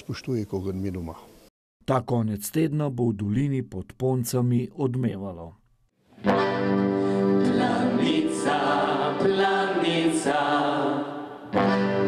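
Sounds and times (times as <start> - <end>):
brass playing: 6.2 - 9.8, 11.4 - 12.0
accordion: 6.2 - 12.0
voices singing together: 7.2 - 12.0.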